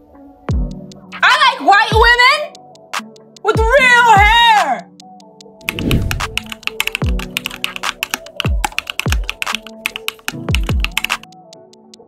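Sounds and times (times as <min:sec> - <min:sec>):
background music with bass drum: 0:00.4 - 0:01.2, 0:01.9 - 0:12.0
keyboard key clicks: 0:05.6 - 0:11.3.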